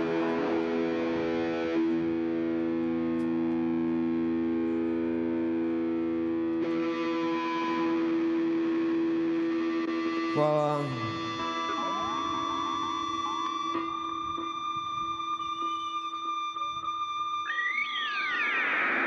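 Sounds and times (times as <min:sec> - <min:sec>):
distorted electric guitar chord: 0:00.0 - 0:19.0.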